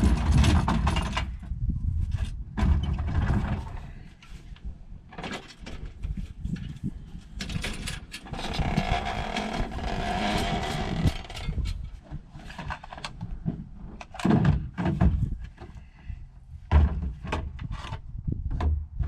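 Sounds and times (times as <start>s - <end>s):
knocks and clatters in truck bed: 0.0s - 3.9s, 7.4s - 19.0s.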